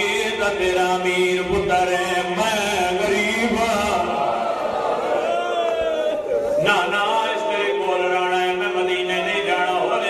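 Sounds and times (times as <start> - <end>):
man chanting through microphone: 0.0 - 4.4, 6.6 - 10.0.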